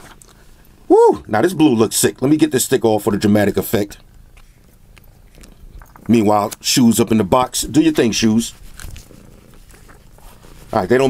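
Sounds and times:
cat purring: 0:08.1 - 0:11.0.

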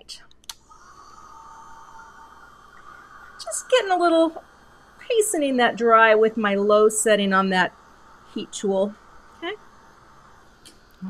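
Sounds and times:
heat tool whining hum: 0:00.5 - 0:11.0.

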